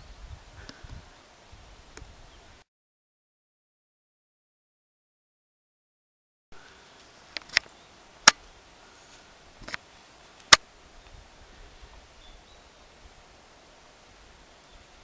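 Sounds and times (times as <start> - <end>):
faint outdoor hiss: 0.0 - 2.7, 6.6 - 15.0.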